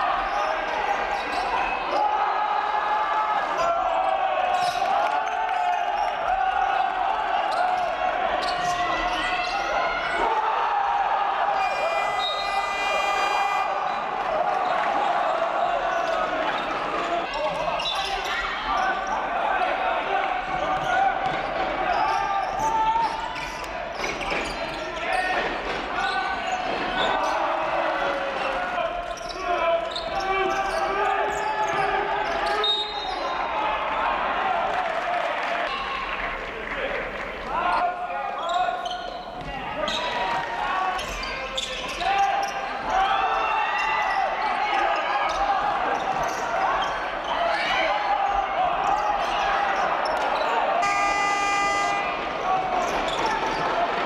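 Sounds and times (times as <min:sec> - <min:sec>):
players shouting: 0:00.0 - 0:54.0.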